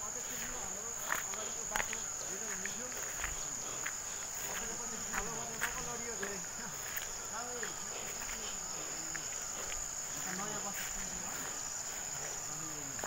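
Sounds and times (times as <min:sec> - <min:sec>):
distant voices talking: 0:00.0 - 0:13.0
footsteps on stony path: 0:00.0 - 0:13.0
high-pitched insect drone: 0:00.0 - 0:13.0.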